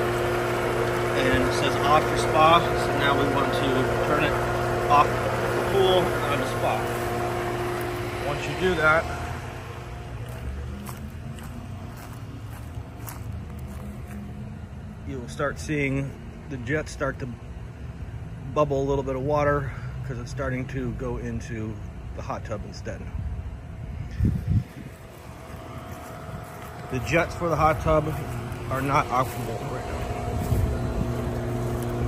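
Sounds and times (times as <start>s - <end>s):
pool pump humming: 0.0s - 32.0s
footsteps on paver deck: 10.0s - 14.5s, 24.7s - 32.0s
wind buffeting microphone: 23.2s - 28.6s, 29.8s - 32.0s.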